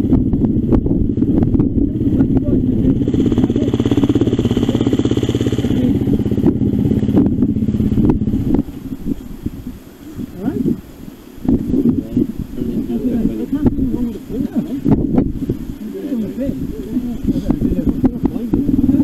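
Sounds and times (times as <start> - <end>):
motorcycle engine running: 0.0 - 10.4, 16.3 - 19.0.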